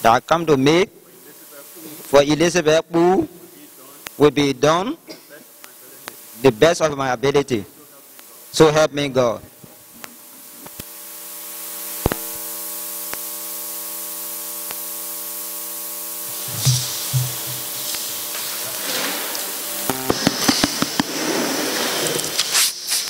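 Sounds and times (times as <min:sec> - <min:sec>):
hum of steady tones: 0:00.0 - 0:22.4
steady hiss: 0:00.0 - 0:23.0
microphone handling clicks: 0:16.3 - 0:18.2.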